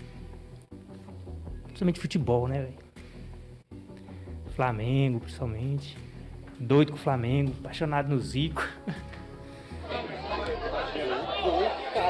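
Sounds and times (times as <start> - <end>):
people talking and calling out: 9.7 - 12.0.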